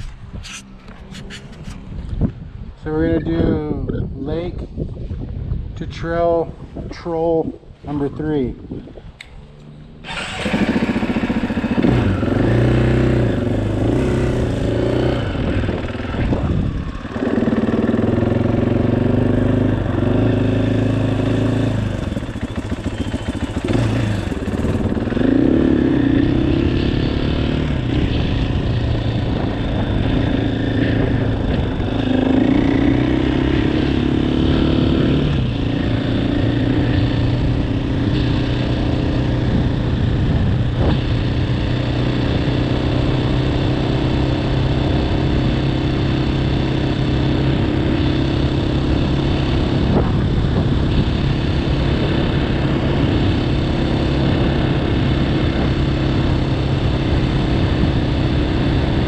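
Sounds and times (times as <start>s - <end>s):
dirt bike engine revving: 10.0s - 59.0s.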